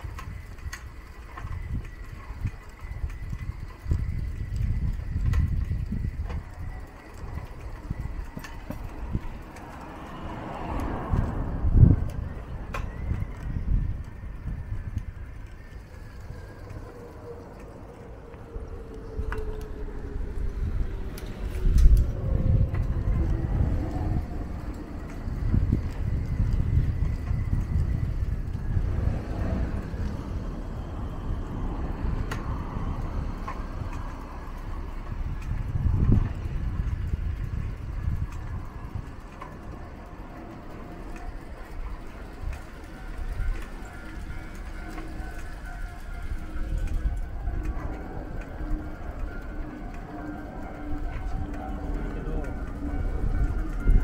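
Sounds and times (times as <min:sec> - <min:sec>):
faint steady tones: 0:00.0 - 0:54.0
low rumble of road traffic: 0:00.0 - 0:54.0.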